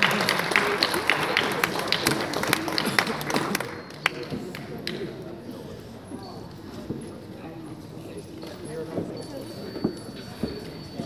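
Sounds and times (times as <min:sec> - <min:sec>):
indistinct chatter in a hall: 0:00.0 - 0:11.0.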